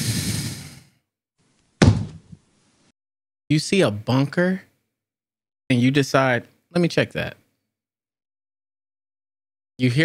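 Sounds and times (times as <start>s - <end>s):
sharp knock: 1.8s - 2.4s.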